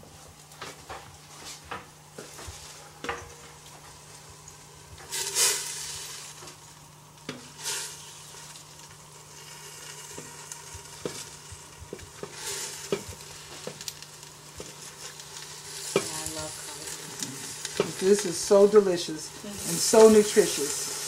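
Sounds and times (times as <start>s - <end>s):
pot sizzling: 1.3s - 21.0s.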